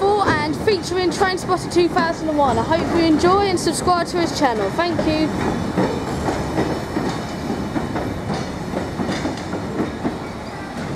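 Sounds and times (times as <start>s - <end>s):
freight train wheels rumbling: 0.0s - 10.9s
wheel clacks on rail: 0.0s - 10.9s.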